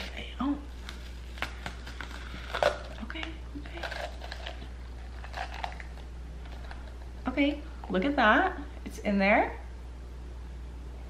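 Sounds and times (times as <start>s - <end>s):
bell pepper flesh crunching: 0.8s - 7.2s.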